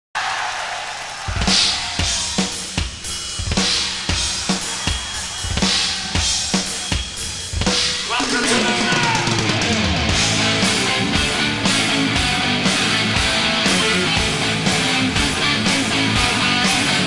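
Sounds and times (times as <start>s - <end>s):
bass drum and snare beat: 1.2s - 17.0s
crash cymbal hits: 1.3s - 8.1s.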